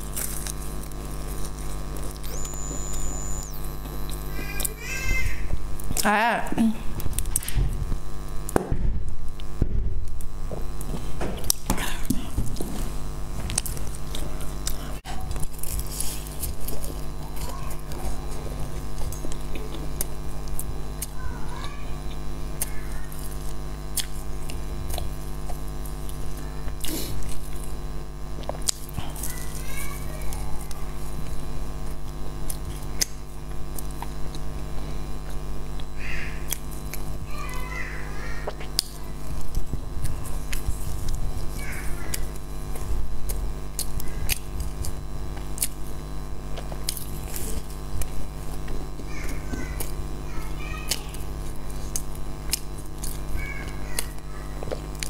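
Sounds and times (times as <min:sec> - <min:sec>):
chewing pastry crunches: 0:00.0 - 0:04.7, 0:12.8 - 0:21.3, 0:22.0 - 0:37.6, 0:38.4 - 0:55.0
steady low hum: 0:00.0 - 0:55.0
mouth clicks and smacks: 0:01.3 - 0:04.8.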